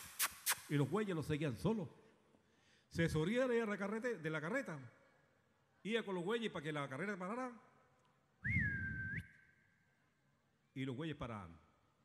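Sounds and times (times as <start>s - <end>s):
man whistling a rising call: 8.4s - 9.5s.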